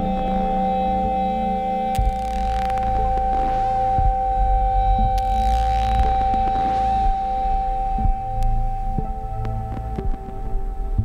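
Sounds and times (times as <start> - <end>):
low droning bass: 0.0 - 11.0
steady high synthesizer tone: 0.0 - 11.0.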